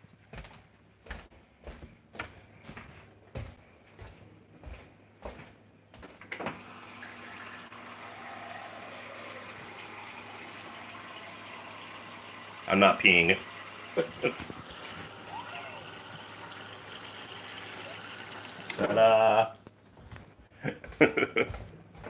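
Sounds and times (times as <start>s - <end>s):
water running into a container: 6.5s - 19.1s.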